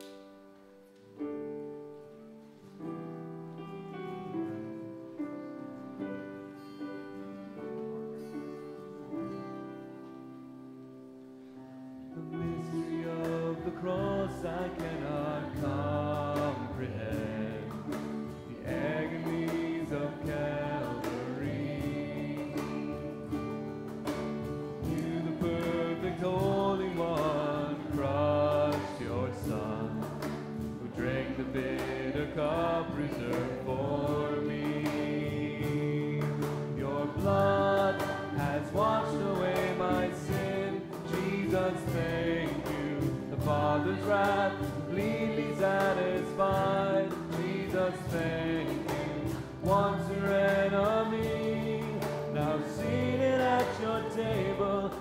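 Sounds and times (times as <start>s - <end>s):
group singing a hymn in unison: 12.1s - 55.0s
sharp rhythmic instrumental strokes: 12.2s - 55.0s.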